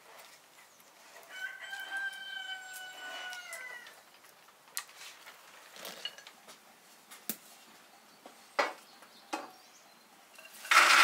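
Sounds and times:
rooster crowing: 1.3s - 4.0s.

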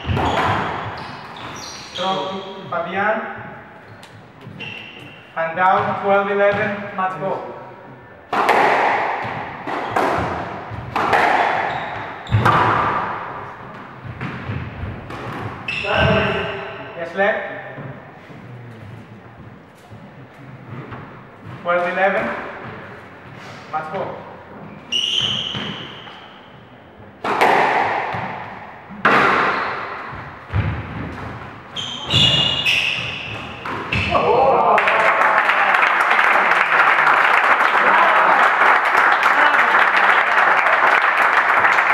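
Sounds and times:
shoes squeaking on wooden floor: 0.0s - 2.8s, 3.4s - 6.7s, 9.4s - 12.8s, 13.4s - 17.0s, 24.5s - 26.6s, 29.4s - 34.2s
squash ball hitting racquets and walls: 0.0s - 34.8s
spectators applauding: 34.7s - 41.9s.

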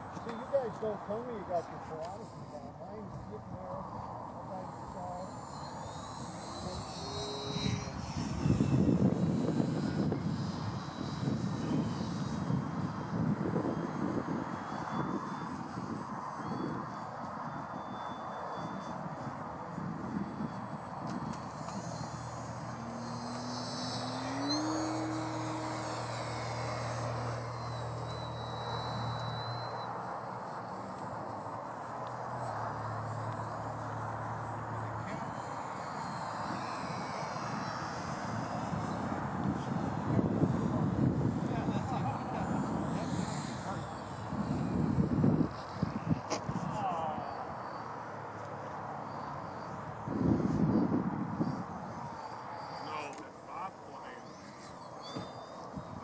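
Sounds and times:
model airplane motor whine: 0.0s - 56.0s.

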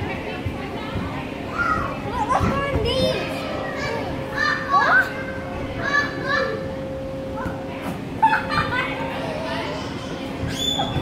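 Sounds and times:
children shouting and squealing: 1.5s - 6.8s, 8.2s - 11.0s.

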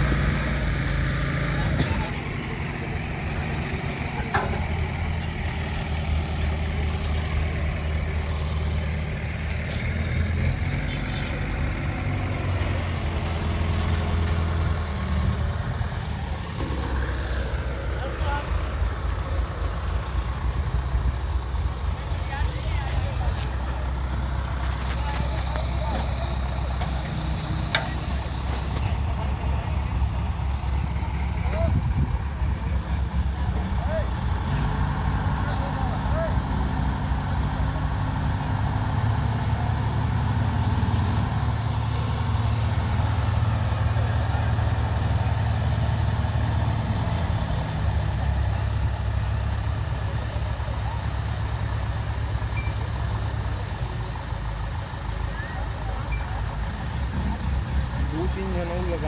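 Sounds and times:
diesel crane engines running: 0.0s - 59.0s.

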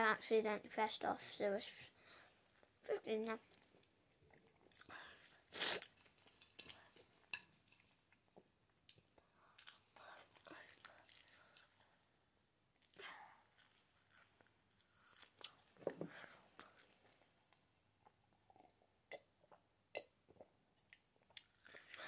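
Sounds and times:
chewing and mouth sounds: 3.5s - 11.9s, 12.8s - 17.3s, 18.0s - 22.0s.

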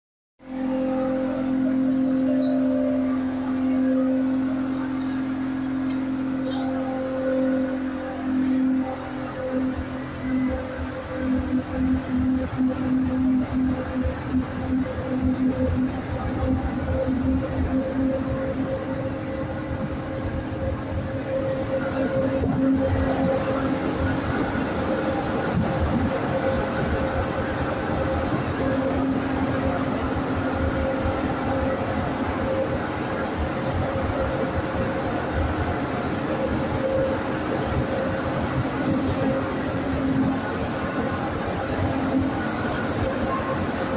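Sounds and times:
train electric hum: 0.4s - 43.9s
train wheels on rails knocking: 33.4s - 43.9s.

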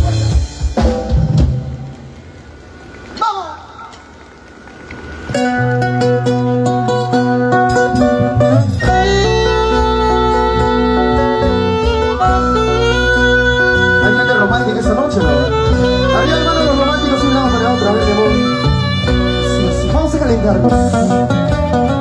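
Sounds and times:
live band playing: 0.0s - 22.0s
guitars: 5.0s - 22.0s
heavy bass: 5.3s - 22.0s.

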